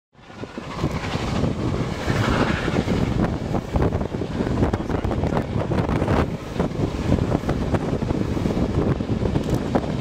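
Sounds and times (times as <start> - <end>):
train rumbling and clattering: 0.1 - 10.0
wind buffeting microphone: 0.2 - 10.0.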